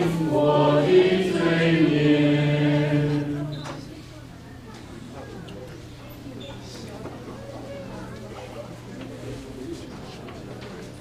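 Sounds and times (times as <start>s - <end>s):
steady low hum: 0.0s - 4.6s
people talking quietly: 0.0s - 11.0s.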